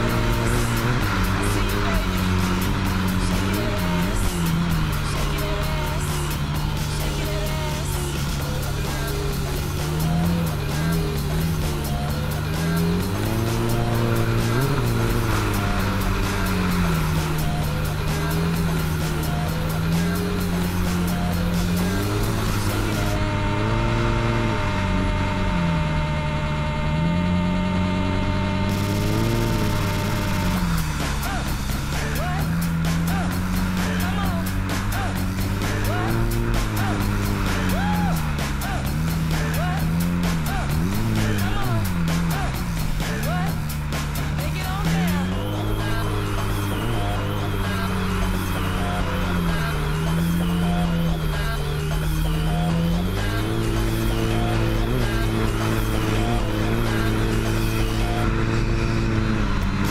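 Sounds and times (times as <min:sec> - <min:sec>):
music: 0:00.0 - 0:27.4, 0:28.1 - 0:59.9
jet ski engine revving: 0:00.0 - 0:59.9.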